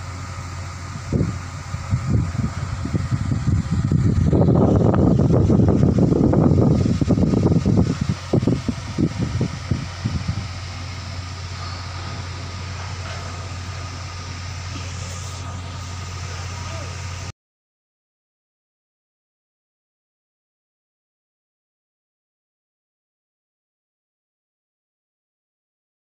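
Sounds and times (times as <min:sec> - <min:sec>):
electric fan hum and whirr: 0:00.0 - 0:17.3
loud irregular low rumble: 0:00.0 - 0:17.3.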